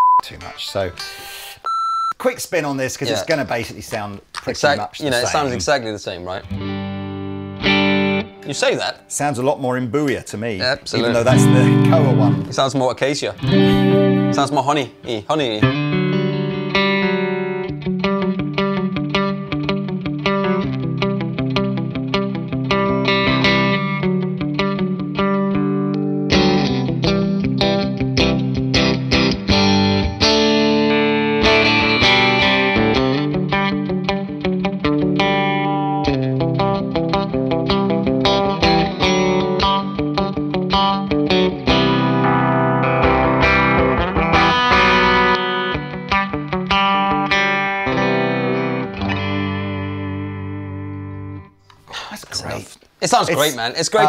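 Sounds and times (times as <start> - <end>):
electric guitar playing: 6.4 - 9.1, 11.0 - 14.6, 15.6 - 51.6.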